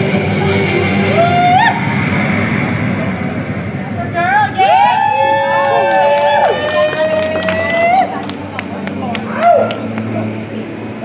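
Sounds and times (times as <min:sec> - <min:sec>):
voices whooping and holding notes: 0:00.8 - 0:02.2, 0:04.2 - 0:10.2.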